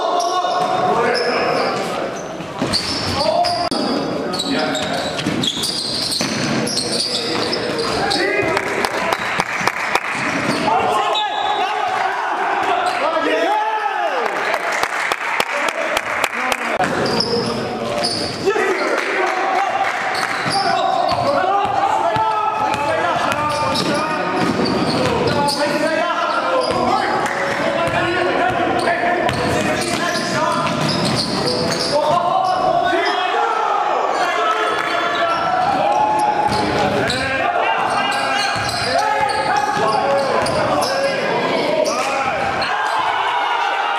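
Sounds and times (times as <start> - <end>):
players' voices and shouts: 0.0 - 9.4, 10.0 - 14.7, 15.3 - 43.9.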